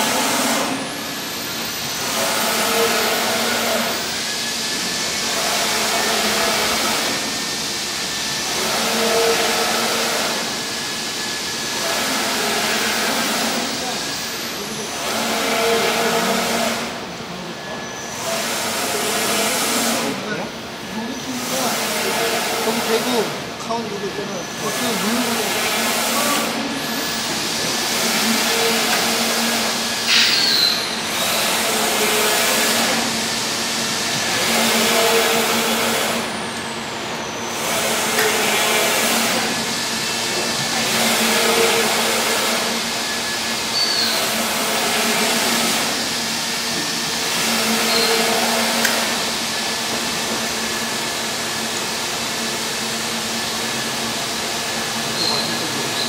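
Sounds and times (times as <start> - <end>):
inkjet printer mechanical hum: 0.0 - 56.0.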